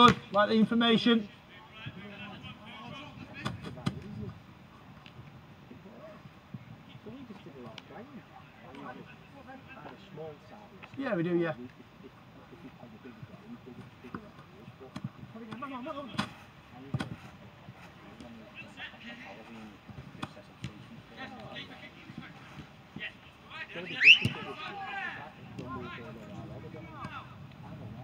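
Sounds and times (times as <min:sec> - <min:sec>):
players shouting: 0:21.1 - 0:27.4.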